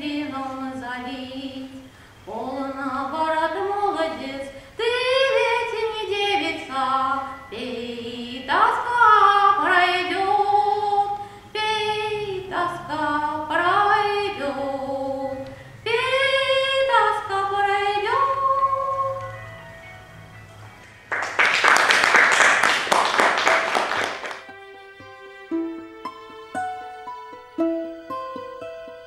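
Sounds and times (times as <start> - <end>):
woman singing unaccompanied: 0.0 - 19.4
applause: 20.9 - 24.5.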